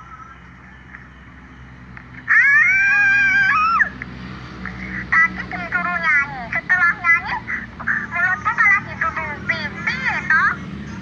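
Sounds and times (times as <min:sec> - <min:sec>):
young child wailing cry: 0:02.3 - 0:03.9.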